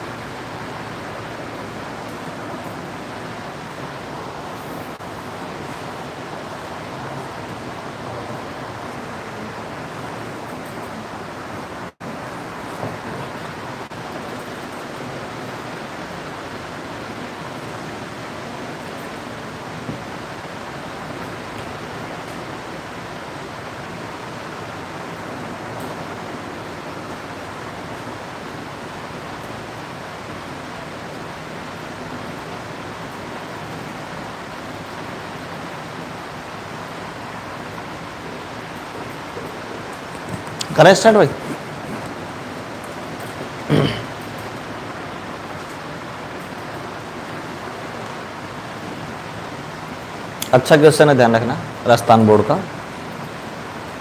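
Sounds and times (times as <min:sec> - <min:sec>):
steady rushing noise: 0:00.0 - 0:54.0.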